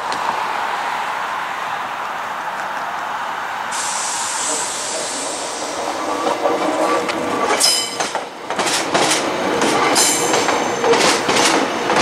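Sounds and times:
electric train running on tracks: 2.5s - 12.0s
bright hiss: 3.7s - 6.1s.

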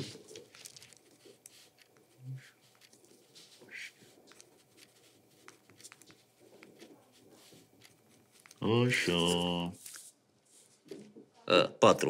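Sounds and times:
ballpoint pens writing on paper: 0.0s - 8.6s.

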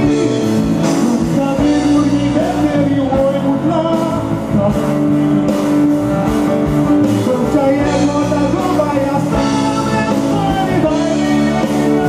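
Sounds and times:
man singing: 0.0s - 6.0s, 6.9s - 12.0s
electric guitar: 0.0s - 12.0s
live band music: 0.0s - 12.0s.

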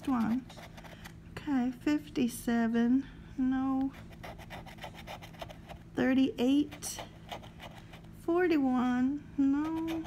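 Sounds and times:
scratching lottery ticket: 0.0s - 1.2s, 3.9s - 8.1s, 9.6s - 10.0s.

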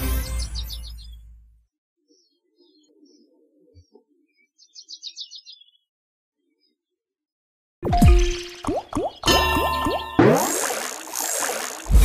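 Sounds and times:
bubbly game effects: 7.8s - 12.0s.

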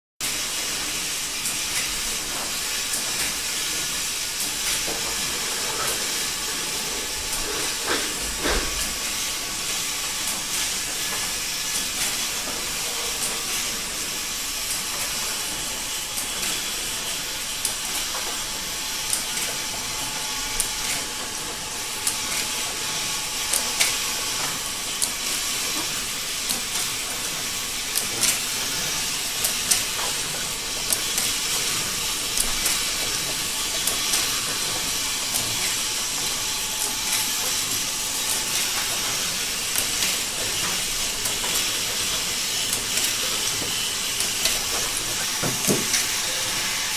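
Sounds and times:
machine clicks and clacks: 0.2s - 46.9s
machine hissing: 0.2s - 46.9s.

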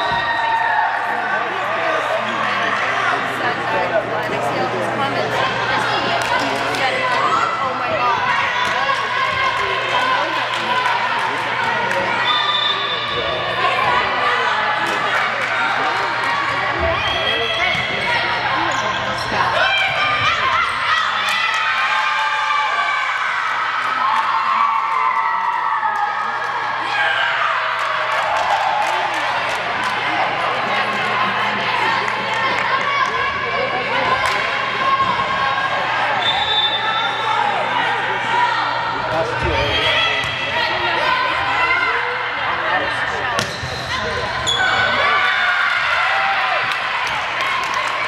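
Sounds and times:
people shouting and cheering: 0.0s - 3.9s, 5.0s - 48.0s
volleyball hits: 43.3s - 44.0s.

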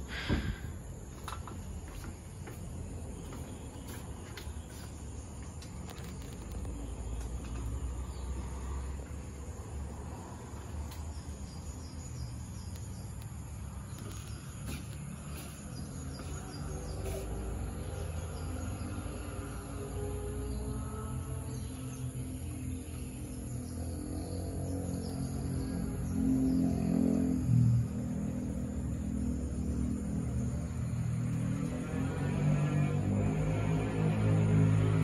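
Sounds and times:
insects chirring: 0.0s - 32.4s.

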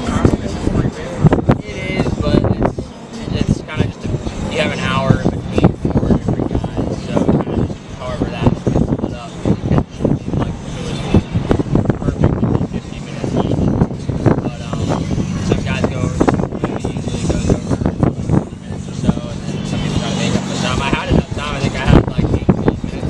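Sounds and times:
men talking: 0.0s - 23.0s
steady low hum: 0.0s - 23.0s.

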